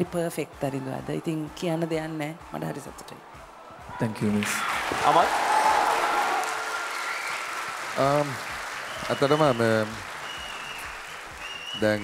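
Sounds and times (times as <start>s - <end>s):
audience applauding: 4.3s - 12.0s.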